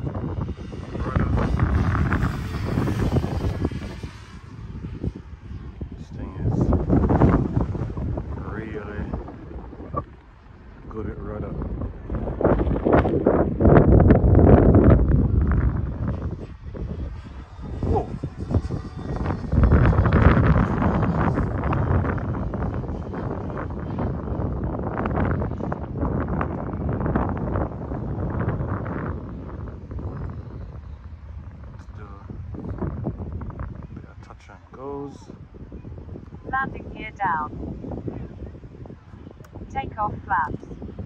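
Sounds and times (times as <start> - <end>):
wind buffeting microphone: 0.0 - 41.0
model airplane motor: 14.7 - 24.2.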